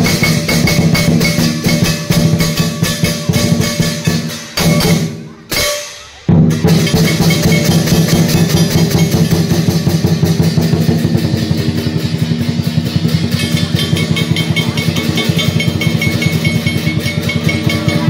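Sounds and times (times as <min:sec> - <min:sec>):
large drum fast roll: 0:00.0 - 0:05.2, 0:06.3 - 0:18.0
cymbals clashing: 0:00.0 - 0:18.0.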